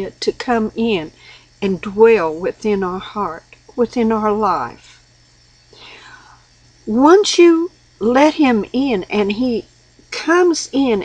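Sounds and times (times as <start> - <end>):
woman talking: 0.0 - 4.9, 6.9 - 11.0
faint breathy sound: 5.7 - 6.5.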